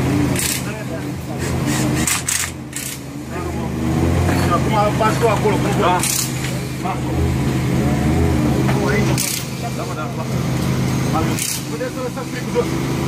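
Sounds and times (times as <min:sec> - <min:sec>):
people talking: 0:00.4 - 0:02.0, 0:03.3 - 0:07.5, 0:08.6 - 0:13.0
short hisses: 0:01.4 - 0:02.2.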